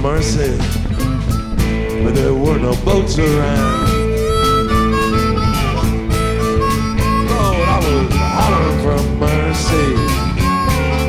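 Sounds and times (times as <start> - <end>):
blues harmonica: 0.0 - 11.0
plucked guitar: 0.0 - 11.0
person singing: 2.0 - 5.4, 6.9 - 10.8.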